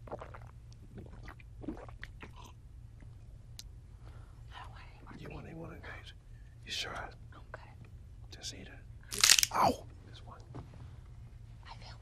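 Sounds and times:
steady low hum: 0.0 - 12.0
whispered speech: 11.6 - 12.0.

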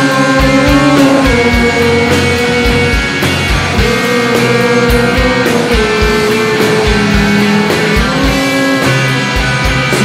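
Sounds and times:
guitar lead line of held notes: 0.0 - 10.0
rock band playing live: 0.0 - 10.0.

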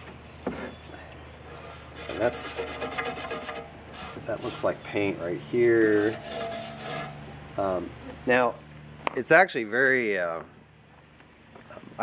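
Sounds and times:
wire brush scratching: 1.5 - 4.8, 5.6 - 7.2.

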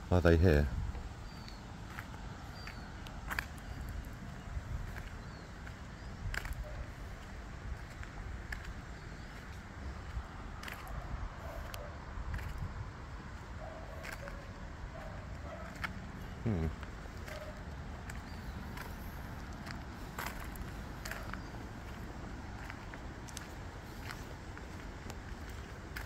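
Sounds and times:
steady low rumble: 0.0 - 26.0
faint bird chirps: 1.2 - 1.7.

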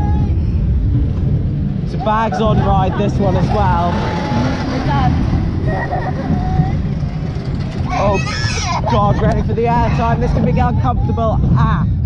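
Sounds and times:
roller coaster rumble and wind rush: 0.0 - 12.0.

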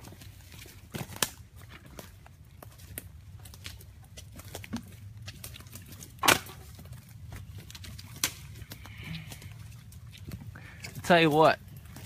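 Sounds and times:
footsteps through dry leaves: 0.0 - 12.0.

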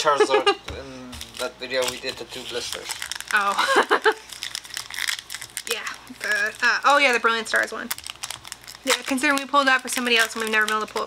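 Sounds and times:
foil wrapper crinkling: 1.2 - 11.0.

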